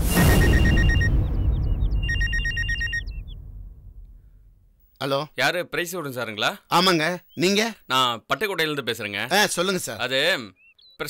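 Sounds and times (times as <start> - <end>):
low rumble: 0.0 - 4.9
mobile phone ringtone beeps: 0.1 - 1.3, 2.0 - 3.2.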